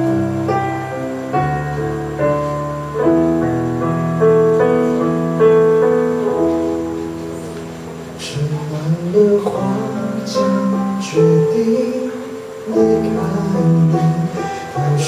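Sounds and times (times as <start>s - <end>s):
stage piano playing slow chords: 0.0s - 15.0s.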